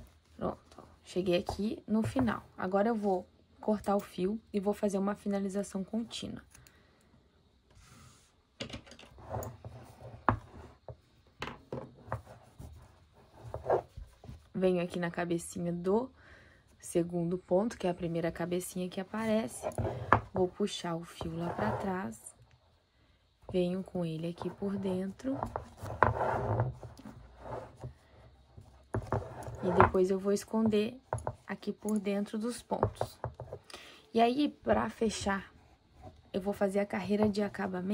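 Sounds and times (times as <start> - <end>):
yarn and board rubbing: 12.0 - 14.3, 21.2 - 22.0, 24.3 - 31.4.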